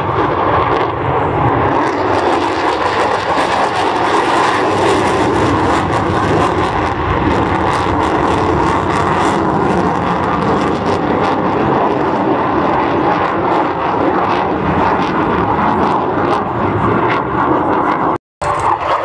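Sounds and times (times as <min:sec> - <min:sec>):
loud crackling jet noise: 0:00.0 - 0:19.0.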